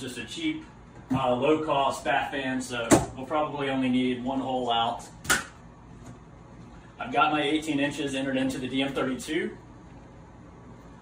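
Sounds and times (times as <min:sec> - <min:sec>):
exhaust fan running: 0:00.0 - 0:11.0.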